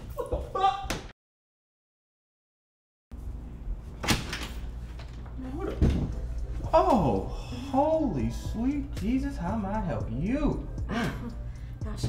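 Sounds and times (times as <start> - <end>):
door opening: 4.0 - 7.0.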